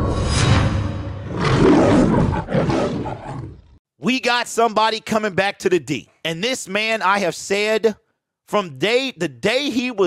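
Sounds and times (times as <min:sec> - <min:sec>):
lion roar: 0:01.2 - 0:03.8.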